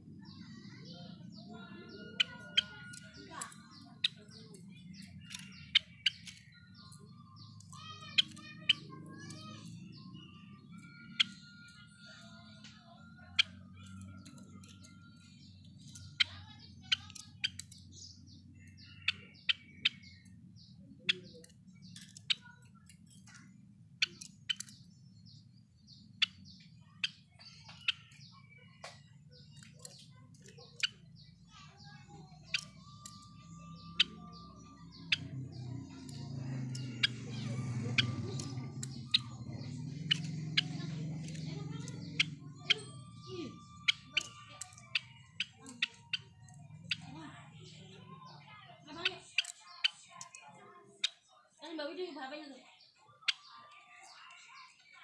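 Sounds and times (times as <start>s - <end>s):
bird chip notes and whistles: 0.0s - 51.2s.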